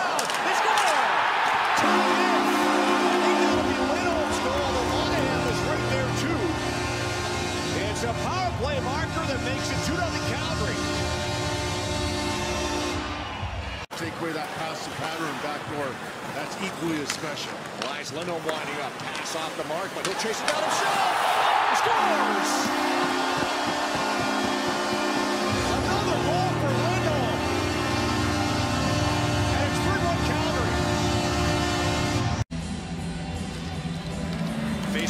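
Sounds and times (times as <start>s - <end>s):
crowd cheering: 0.0s - 32.4s
goal music: 1.6s - 13.2s, 19.1s - 32.4s
goal horn chord: 1.6s - 13.5s, 21.5s - 32.4s.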